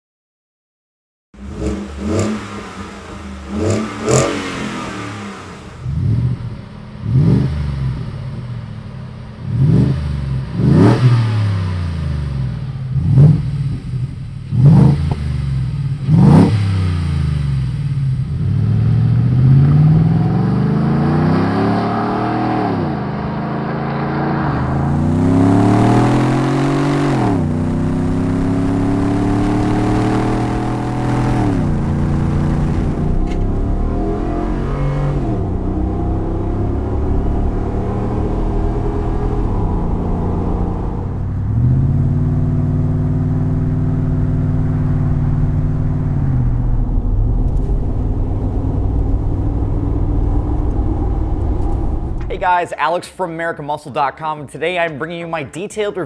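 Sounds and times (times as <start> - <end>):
truck engine revving: 1.4 - 8.6, 9.4 - 52.6
truck accelerating: 1.4 - 53.2.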